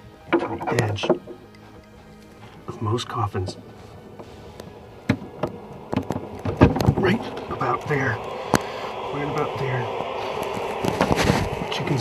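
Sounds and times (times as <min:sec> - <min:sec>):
taps and knocks on wooden lid: 0:00.3 - 0:01.4.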